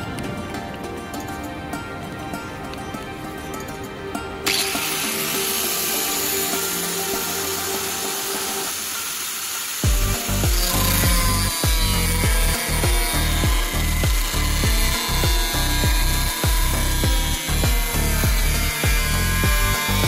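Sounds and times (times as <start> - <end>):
background music: 0.0 - 20.0
angle grinder cutting plastic pipe: 4.4 - 20.0.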